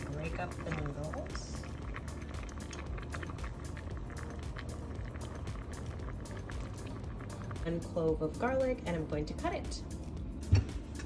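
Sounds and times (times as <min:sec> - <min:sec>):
water boiling in a saucepan: 0:00.0 - 0:10.9.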